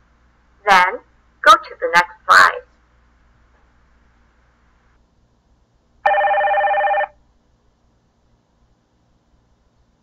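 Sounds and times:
telephone ringing: 0:06.0 - 0:07.2.

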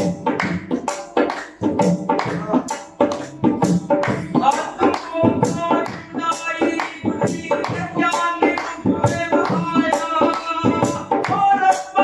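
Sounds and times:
hand claps: 0:00.1 - 0:05.2, 0:05.8 - 0:06.2, 0:08.5 - 0:08.8
person singing: 0:00.6 - 0:12.0.

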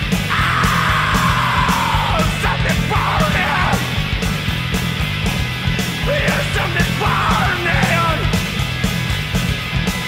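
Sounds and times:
loud rock music: 0:00.0 - 0:10.0
person yelling: 0:00.3 - 0:03.8.

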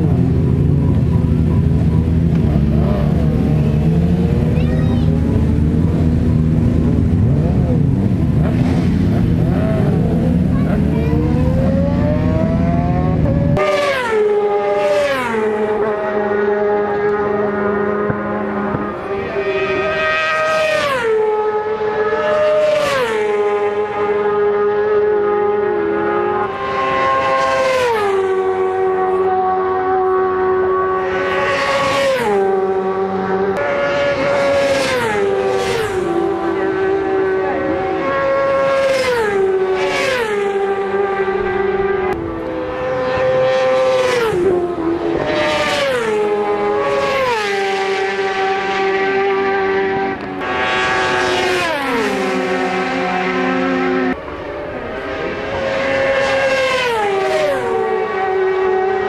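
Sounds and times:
racing motorcycles passing: 0:00.0 - 0:59.0.

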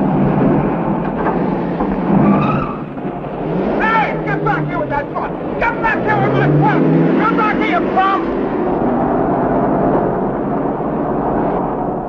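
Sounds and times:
pickup truck engine droning: 0:00.0 - 0:12.0
men shouting: 0:03.8 - 0:08.3.

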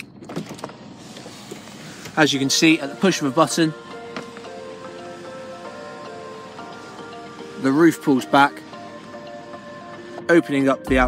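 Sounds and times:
electric roof motor running: 0:00.4 - 0:11.0.

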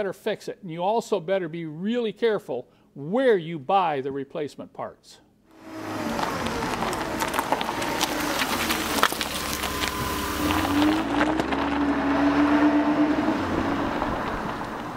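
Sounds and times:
rushing noise: 0:05.6 - 0:14.9
vehicle engine running: 0:05.6 - 0:14.9.

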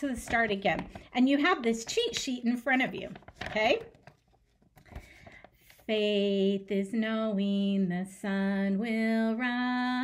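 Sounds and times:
woman singing: 0:05.8 - 0:10.0.

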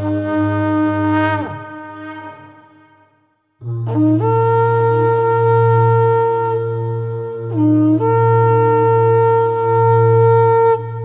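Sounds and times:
low drone: 0:00.0 - 0:11.0
wind instrument melody: 0:00.0 - 0:11.0.

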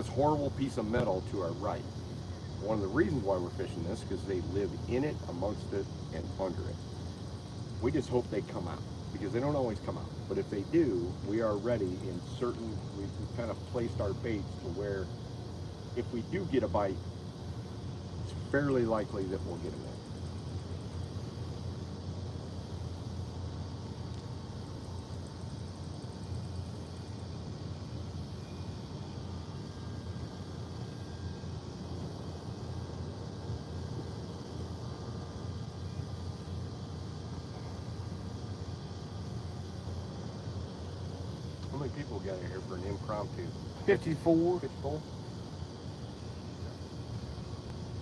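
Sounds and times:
low outdoor rumble: 0:00.0 - 0:48.0.

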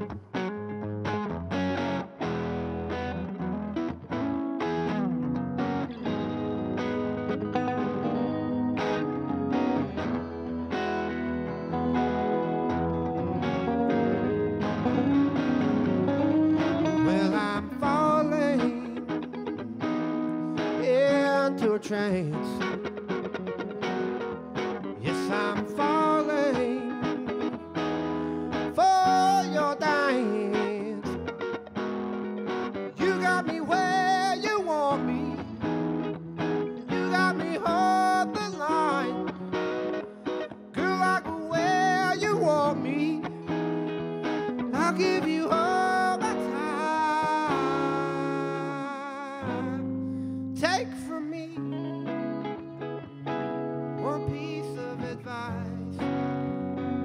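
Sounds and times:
electric guitar chords: 0:00.0 - 0:57.0
electric guitar lead line: 0:00.0 - 0:57.0.

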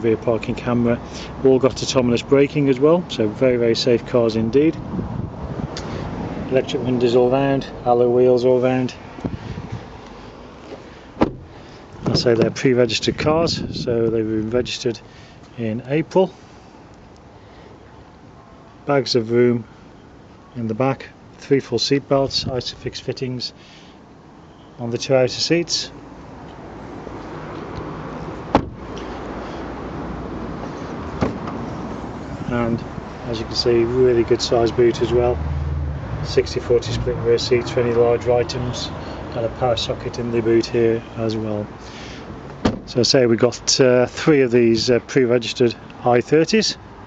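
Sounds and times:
faint steady background noise: 0:00.0 - 0:47.0
outdoor background noise: 0:00.0 - 0:47.0
car door shutting: 0:10.7 - 0:12.7, 0:28.4 - 0:29.0, 0:30.6 - 0:31.7, 0:42.5 - 0:42.9.

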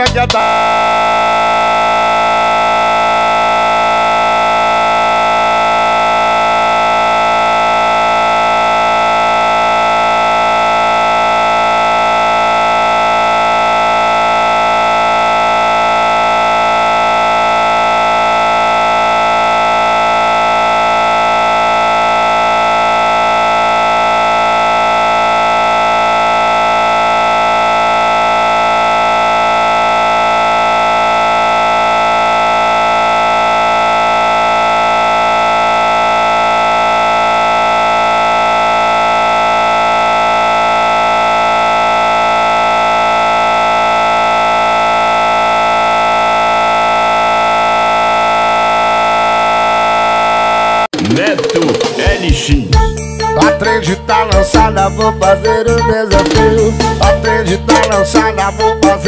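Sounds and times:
music: 0:00.0 - 0:00.5, 0:51.0 - 0:59.0
electronic buzzing tone: 0:00.0 - 0:51.0, 0:52.8 - 0:59.0.

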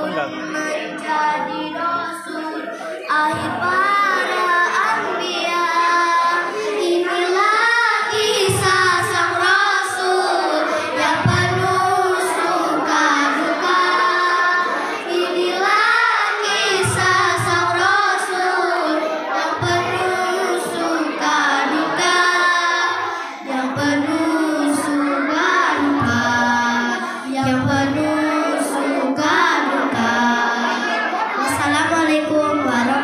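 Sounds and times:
girls singing into microphones: 0:00.0 - 0:33.0.

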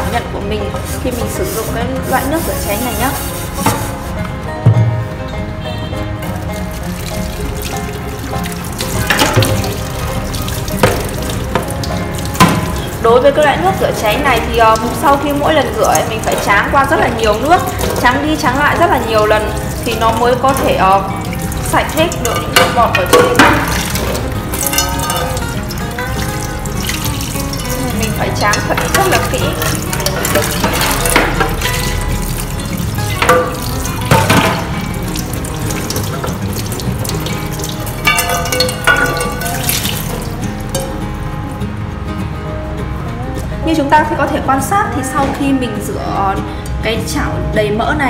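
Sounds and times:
frying pan being scrubbed: 0:00.0 - 0:04.3, 0:06.4 - 0:41.0
background music: 0:00.0 - 0:48.0
pan clattering against sink: 0:03.0 - 0:04.1, 0:08.7 - 0:13.0, 0:14.6 - 0:41.0
tap water running into sink: 0:06.2 - 0:41.1.

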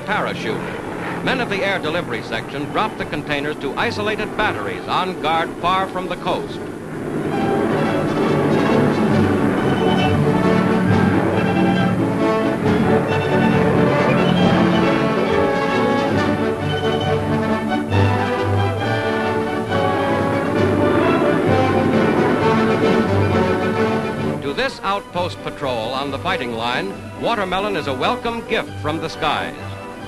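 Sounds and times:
orchestral score: 0:00.0 - 0:30.0.

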